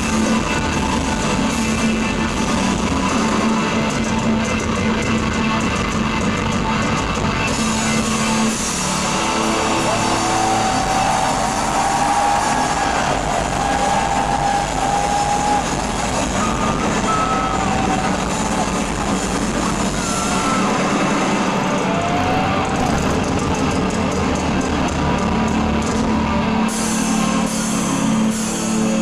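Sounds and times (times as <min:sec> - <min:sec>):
live rock concert noise: 0:00.0 - 0:29.0.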